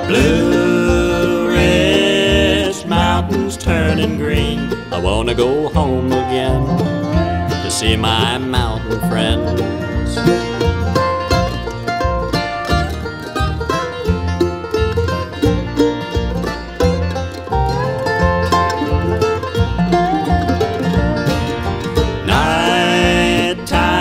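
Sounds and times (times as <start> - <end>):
banjo picking: 0.0 - 24.0
bass line: 0.0 - 24.0
guitar: 0.0 - 24.0
held melody line: 0.0 - 24.0.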